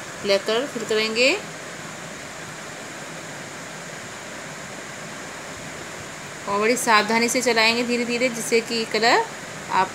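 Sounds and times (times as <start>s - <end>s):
room noise hiss: 0.0s - 9.9s.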